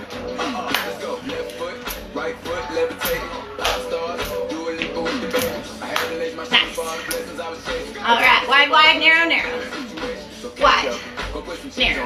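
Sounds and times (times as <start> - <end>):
workout music with steady beat: 0.0 - 12.0.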